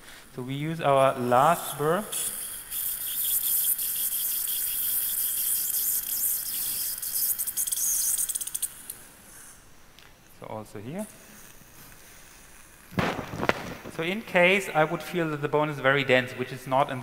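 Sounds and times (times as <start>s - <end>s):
surgical drill hissing: 0.0s - 9.6s
suction tip slurping: 1.0s - 9.6s.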